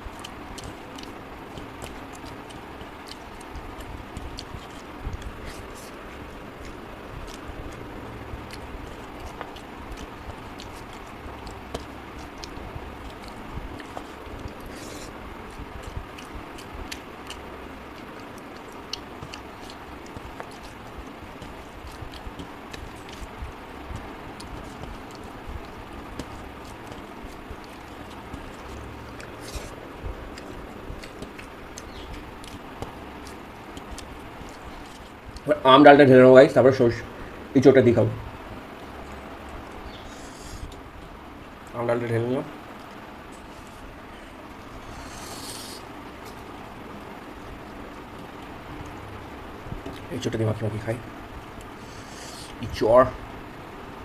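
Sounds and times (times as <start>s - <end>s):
fingers mixing food on metal plate: 0.0s - 35.9s, 42.5s - 50.3s
soft eating sounds: 0.0s - 54.0s.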